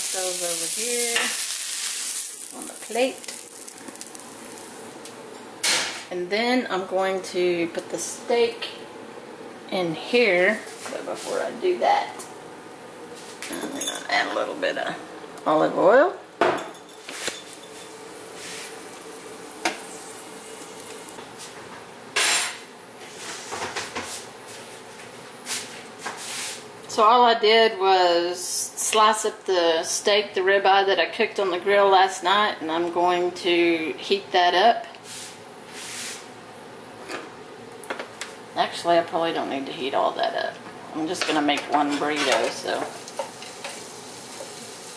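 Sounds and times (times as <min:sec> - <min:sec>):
faint steady hiss: 0:00.0 - 0:44.9
pan and utensils clinking: 0:16.4 - 0:18.0, 0:41.2 - 0:43.8.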